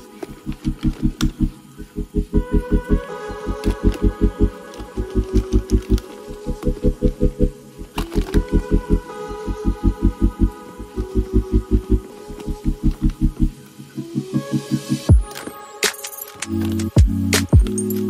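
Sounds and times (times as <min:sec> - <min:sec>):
mellow music with pulsing bass: 0:00.0 - 0:18.0.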